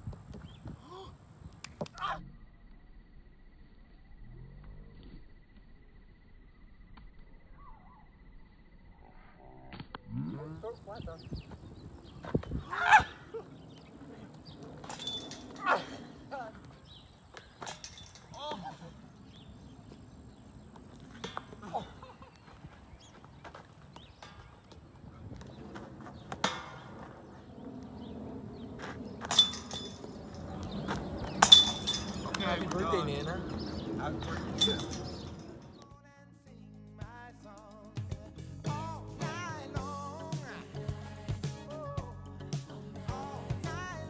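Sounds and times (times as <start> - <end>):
metallic chain jingle: 14.7 - 17.0, 17.6 - 19.2, 29.2 - 35.8
discs clanking on chain basket: 14.7 - 19.0, 21.1 - 22.0, 29.2 - 35.8
disc hitting metal basket: 14.8 - 16.2, 26.3 - 27.1, 29.2 - 30.7, 31.3 - 32.8, 34.3 - 35.5.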